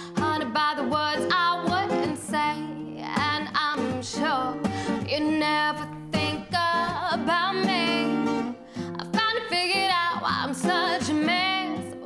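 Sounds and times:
acoustic guitar chords: 0:00.0 - 0:12.0
woman singing: 0:00.0 - 0:12.0.

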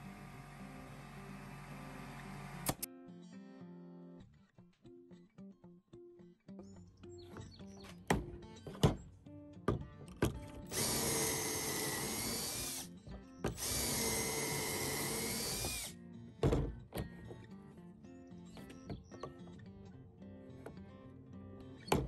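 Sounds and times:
cordless drill whine: 0:00.0 - 0:02.9, 0:10.7 - 0:12.9, 0:13.5 - 0:15.9.

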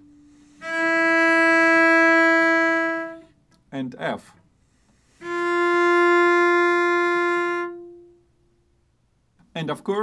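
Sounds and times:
cello long bowed note: 0:00.0 - 0:03.3, 0:05.0 - 0:08.3.

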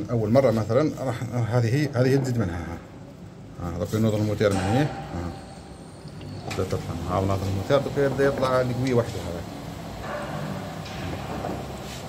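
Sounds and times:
water rushing through boiler: 0:06.2 - 0:12.0.

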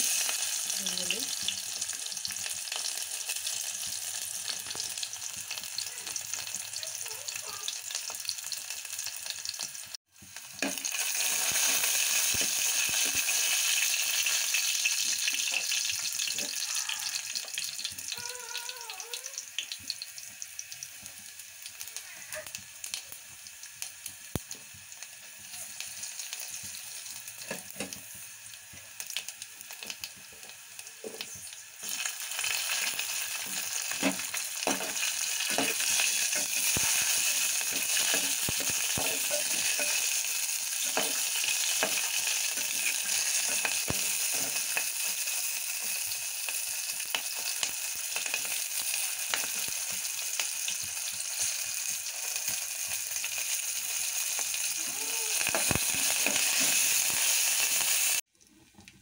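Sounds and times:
spices sizzling in hot oil: 0:00.0 - 0:59.0.

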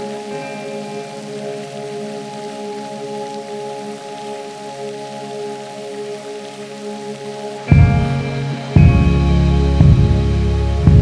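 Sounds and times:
ambient music of layered tones: 0:00.0 - 0:11.0
even hiss: 0:00.0 - 0:11.0.

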